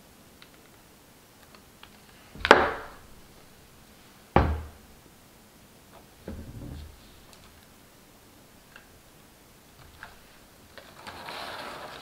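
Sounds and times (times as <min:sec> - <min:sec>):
dull knocks on wooden table: 0:04.4 - 0:04.7.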